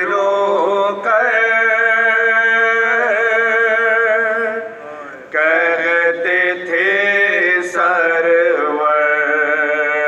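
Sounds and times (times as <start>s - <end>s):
men chanting a lament: 0.0s - 10.0s.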